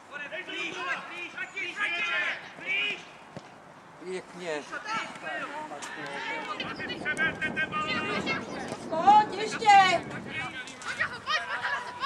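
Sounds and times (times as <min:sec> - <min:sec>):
people shouting calls: 0:00.1 - 0:03.2, 0:04.6 - 0:12.0.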